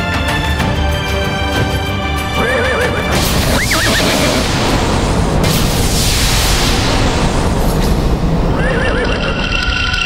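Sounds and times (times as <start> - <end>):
horse whinnying: 2.4 - 4.4, 8.6 - 9.4.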